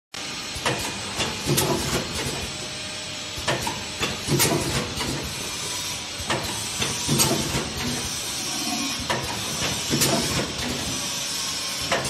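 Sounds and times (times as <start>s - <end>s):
machine mechanical hiss: 0.2s - 12.0s
machine clacks and knocks: 0.6s - 2.5s, 3.4s - 5.4s, 6.2s - 8.2s, 9.0s - 11.0s, 11.8s - 12.0s.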